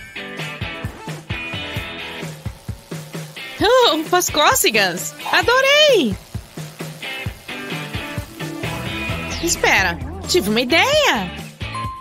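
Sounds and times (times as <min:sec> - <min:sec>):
upbeat music with steady beat: 0:00.0 - 0:12.0.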